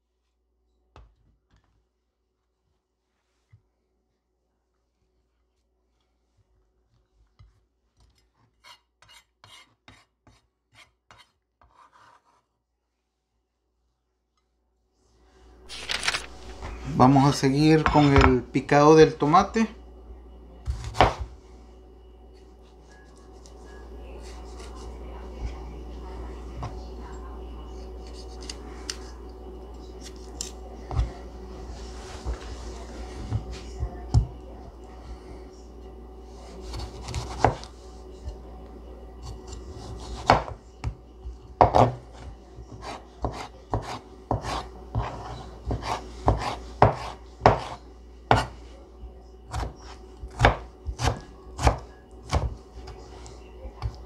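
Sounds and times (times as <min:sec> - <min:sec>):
knife chopping on cutting board: 0:20.6 - 0:21.3, 0:36.6 - 0:37.7, 0:39.5 - 0:40.6, 0:41.5 - 0:48.6, 0:49.5 - 0:53.0
knife slicing tomato: 0:36.4 - 0:37.8, 0:41.6 - 0:48.6, 0:49.5 - 0:53.2.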